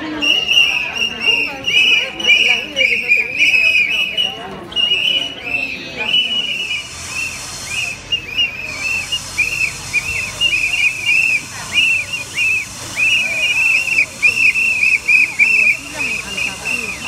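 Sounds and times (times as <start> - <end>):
plastic whistles blowing: 0.0 - 17.0.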